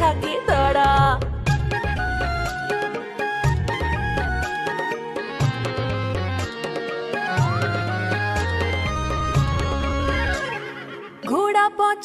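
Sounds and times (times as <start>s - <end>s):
backing music: 0.0s - 11.6s.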